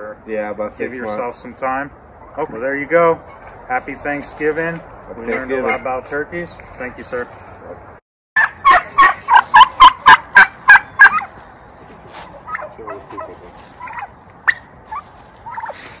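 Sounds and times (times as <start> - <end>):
short turkey calls: 8.4 - 11.3, 12.1 - 16.0
turkey gobbling: 8.4 - 11.4, 12.0 - 16.0.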